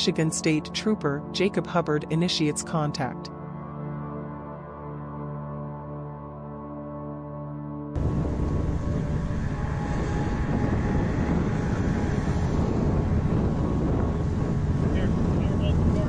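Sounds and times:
vehicle noise: 8.0 - 16.0
wind on microphone: 8.0 - 16.0.

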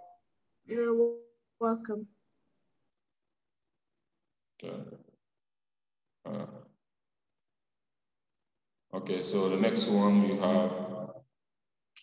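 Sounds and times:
man saying uh: 4.6 - 4.9, 9.0 - 10.8.

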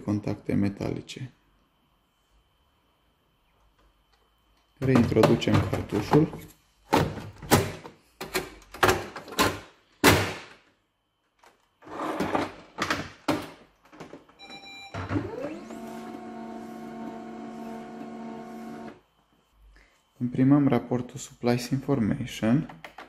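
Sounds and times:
printer beep: 14.4 - 19.0
printer motor running: 15.2 - 19.0.

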